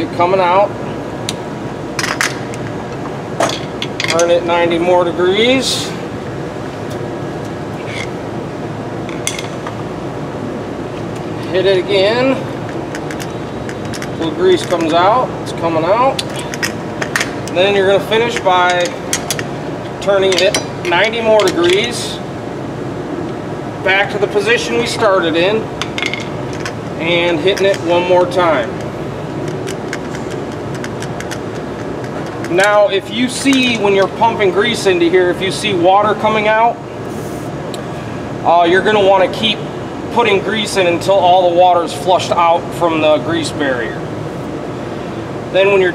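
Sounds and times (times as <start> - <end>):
steady background hiss: 0.0 - 45.9
steady mechanical hum: 0.0 - 45.9.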